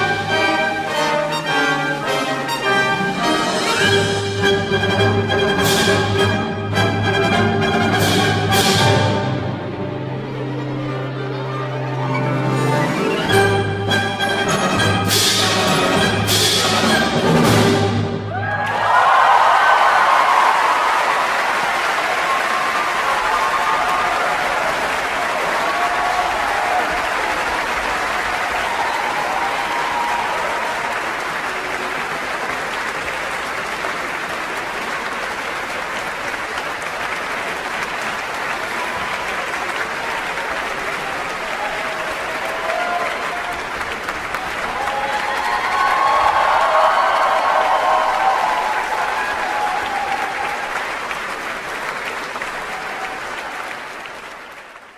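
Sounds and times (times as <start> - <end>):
audience applauding: 18.3 - 54.9
people cheering: 18.3 - 54.9.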